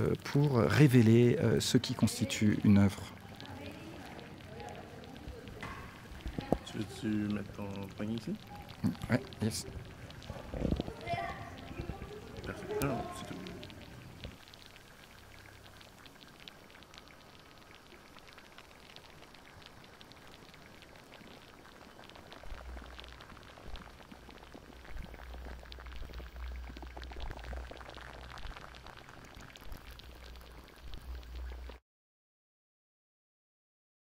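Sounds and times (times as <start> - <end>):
faint crackling and pattering: 0.0 - 31.8.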